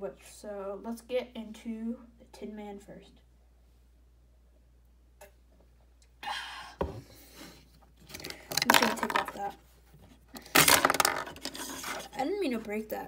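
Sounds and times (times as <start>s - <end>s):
plastic toy pieces clicking and rattling: 8.1s - 9.5s, 10.4s - 12.2s.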